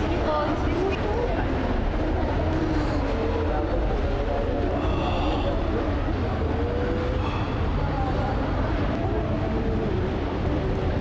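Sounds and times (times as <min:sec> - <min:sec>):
faint wavering voices: 0:00.0 - 0:11.0
steady low rumble: 0:00.0 - 0:11.0.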